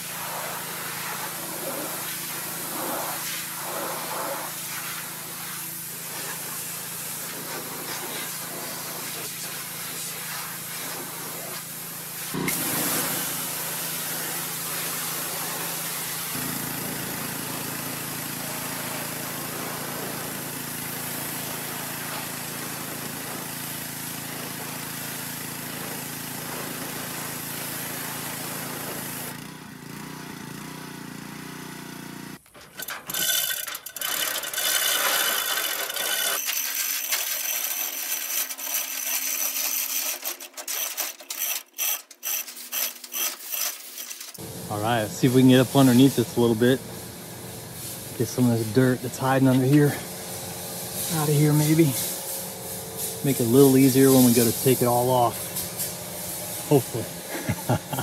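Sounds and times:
pressure washer spraying metal: 0.0s - 58.0s.

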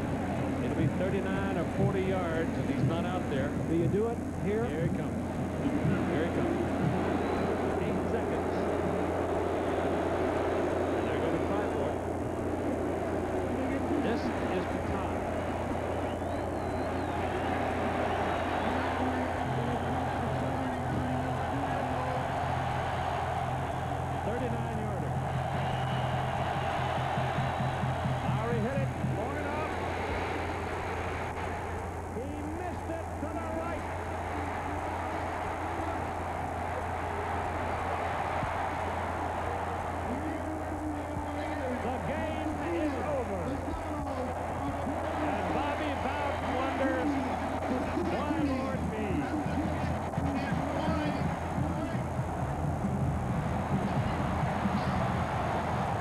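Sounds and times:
constant low hum: 0.0s - 56.0s
stadium crowd noise: 0.0s - 56.0s.

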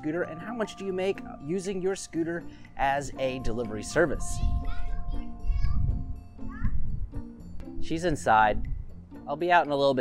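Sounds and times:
background music: 0.0s - 10.0s
child calling out: 4.6s - 6.8s.

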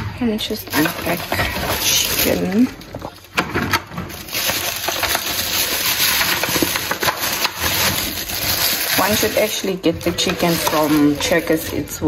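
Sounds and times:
plastic bag rustling and crinkling: 0.4s - 12.0s.

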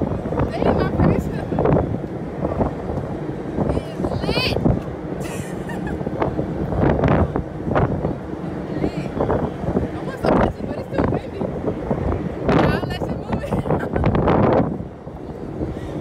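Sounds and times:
wind buffeting microphone: 0.0s - 16.0s
woman's voice: 0.5s - 1.6s, 3.7s - 4.6s, 10.0s - 11.5s, 12.6s - 13.9s
woman laughing: 5.2s - 6.1s, 13.3s - 14.2s.

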